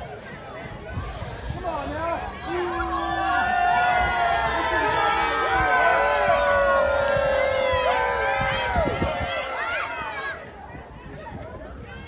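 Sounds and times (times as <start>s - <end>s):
crowd shouting: 1.7s - 10.9s.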